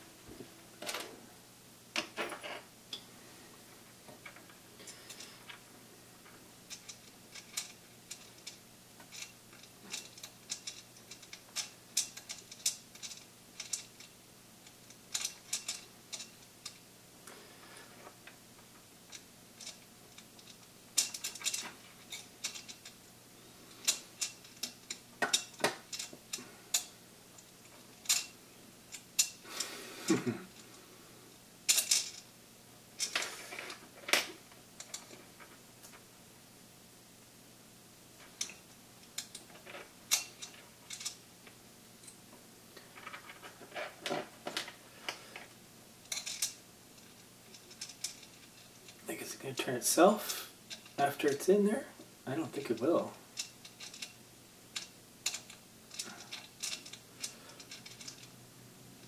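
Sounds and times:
hands handling small parts: 19.1s - 23.0s, 42.8s - 49.0s, 52.6s - 58.4s.

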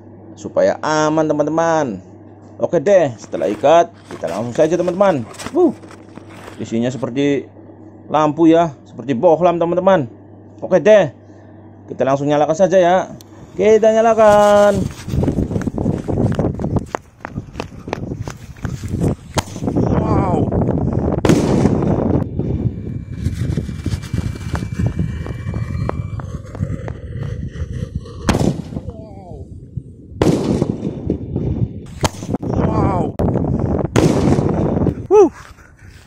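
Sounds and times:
firework bangs and crackles: 21.2s - 22.0s, 30.2s - 31.2s, 33.9s - 34.6s
firework whistling: 22.9s - 28.9s.

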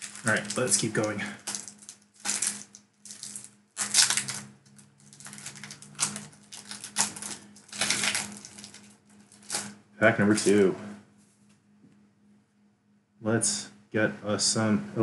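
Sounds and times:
foil wrapper crinkling: 0.0s - 9.7s.

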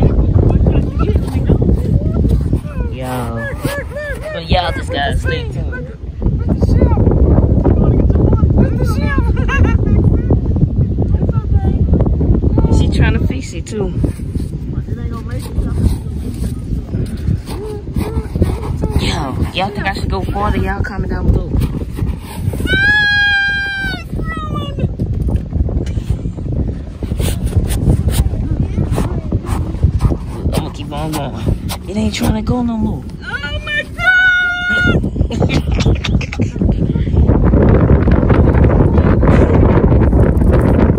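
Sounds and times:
people's voices: 0.0s - 40.1s
wind rumble on microphone: 0.0s - 40.9s.

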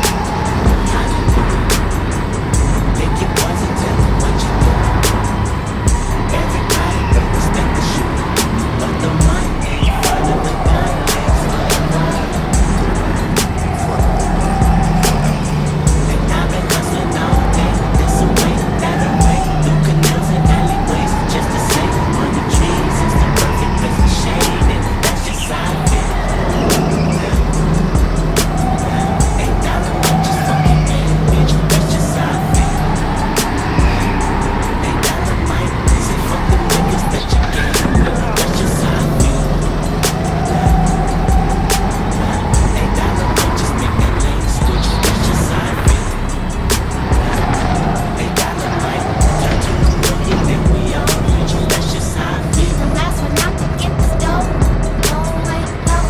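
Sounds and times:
go-kart engine: 0.0s - 56.0s
music playing: 0.0s - 56.0s.

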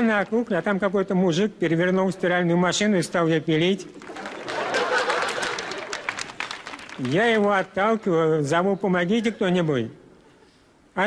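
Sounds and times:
audience applause: 4.0s - 7.6s.

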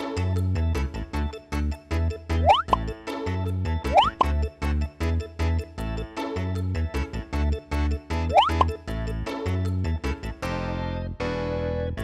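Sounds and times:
upbeat background music: 0.0s - 12.0s
rising pop sound effect: 2.4s - 2.8s, 3.9s - 4.4s, 8.3s - 8.8s.

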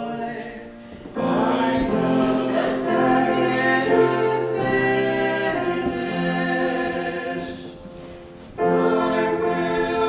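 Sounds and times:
choir singing in harmony: 0.0s - 10.0s
piano accompaniment: 0.0s - 10.0s.

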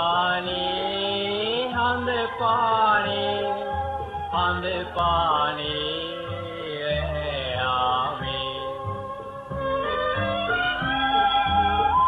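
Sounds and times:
person singing melody: 0.0s - 12.0s
sustained bass notes: 1.4s - 12.0s.

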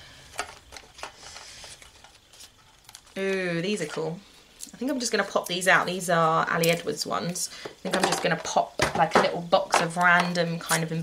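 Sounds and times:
sticker sheets rustling in metal tin: 0.2s - 4.2s.

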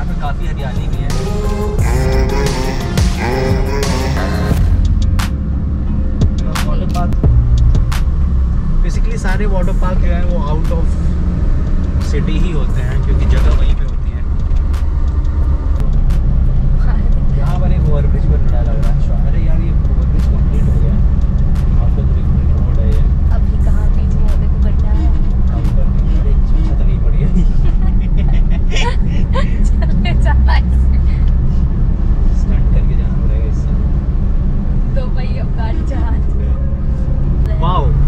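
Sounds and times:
indistinct voices: 0.0s - 5.2s
road and engine rumble: 0.0s - 38.0s.

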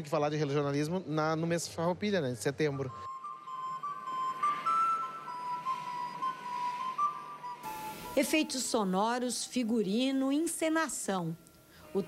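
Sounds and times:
recorder playing slow melody: 2.9s - 8.6s.

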